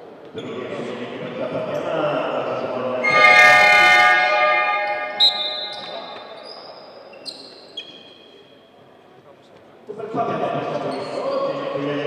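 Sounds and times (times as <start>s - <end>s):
arena horn sounding: 3.0s - 6.2s
short high squeaks: 3.0s - 8.4s.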